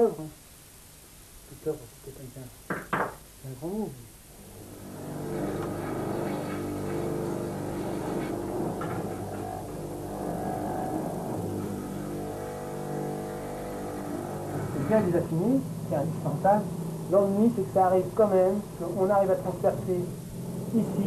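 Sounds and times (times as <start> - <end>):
bench grinder motor hum: 4.4 - 21.0.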